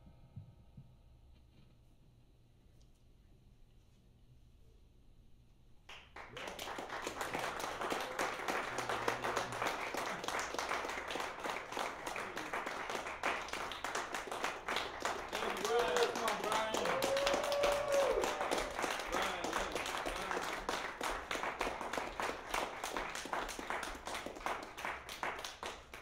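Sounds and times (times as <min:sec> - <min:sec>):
audience applause: 0:05.9 - 0:26.0
people whooping: 0:15.0 - 0:20.6.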